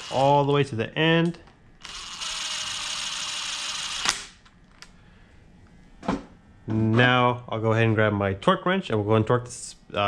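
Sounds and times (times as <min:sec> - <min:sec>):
impact driver rattling buzz: 0:00.0 - 0:00.3, 0:01.8 - 0:04.3.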